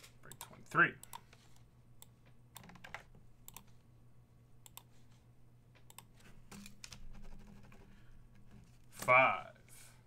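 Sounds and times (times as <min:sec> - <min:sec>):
computer keys clicking: 0:00.3 - 0:01.4, 0:02.0 - 0:03.7, 0:04.6 - 0:04.9, 0:05.8 - 0:07.9.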